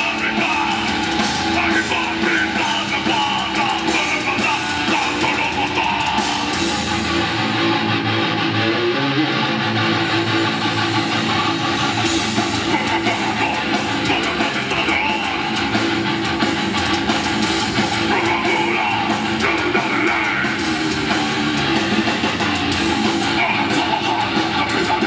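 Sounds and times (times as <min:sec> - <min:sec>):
heavy metal band playing live: 0:00.0 - 0:25.0.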